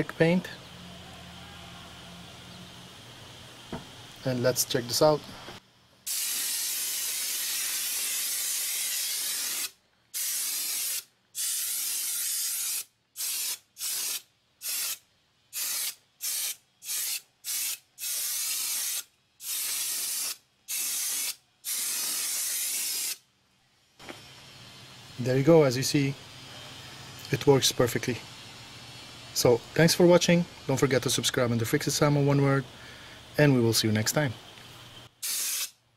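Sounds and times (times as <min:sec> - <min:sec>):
air paint sprayer hissing: 0:01.9 - 0:35.8.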